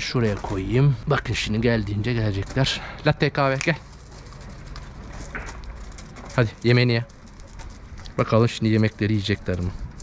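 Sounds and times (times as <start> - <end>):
dog paws trotting on gravel: 0.0 - 10.0.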